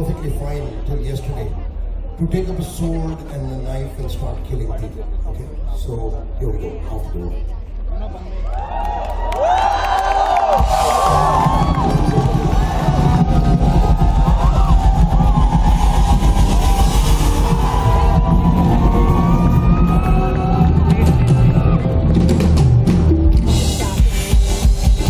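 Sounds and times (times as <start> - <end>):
crowd whooping and cheering: 8.2 - 22.7
bass guitar: 10.4 - 25.0.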